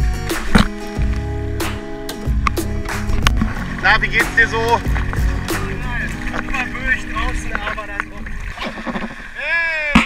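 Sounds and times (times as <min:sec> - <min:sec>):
water: 0:00.0 - 0:10.0
wind: 0:00.0 - 0:10.0.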